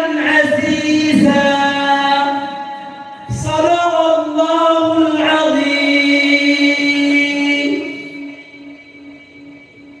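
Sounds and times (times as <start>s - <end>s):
man reciting a long held note: 0.0s - 9.1s.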